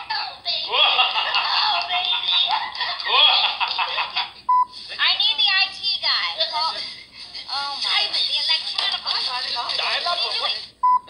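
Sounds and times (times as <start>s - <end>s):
high excited voices: 0.0s - 10.8s.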